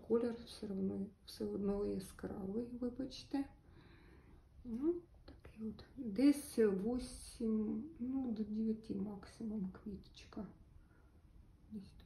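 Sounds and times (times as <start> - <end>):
woman whispering: 4.7 - 6.1, 11.7 - 12.0.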